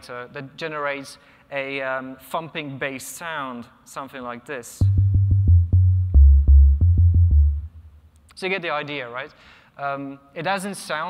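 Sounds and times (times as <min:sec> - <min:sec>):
deep sine bass line: 0:04.8 - 0:08.0.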